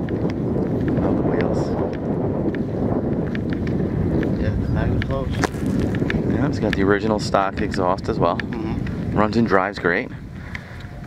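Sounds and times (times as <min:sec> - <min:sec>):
faint crackles: 0:00.0 - 0:11.0
wind buffeting microphone: 0:00.0 - 0:11.0.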